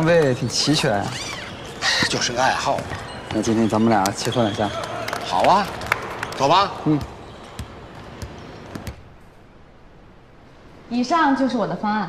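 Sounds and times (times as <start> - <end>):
basketball bouncing on court floor: 0.0 - 4.9, 6.8 - 9.1.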